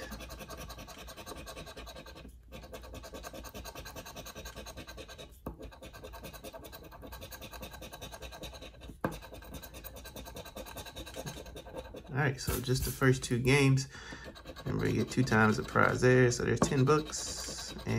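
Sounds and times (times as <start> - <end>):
coin scraping a scratch card: 0.0 - 13.2, 14.2 - 17.9.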